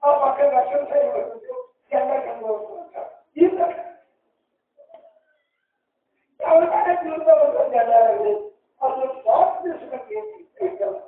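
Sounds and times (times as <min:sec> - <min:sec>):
man preaching: 0:00.0 - 0:04.1, 0:06.4 - 0:11.0.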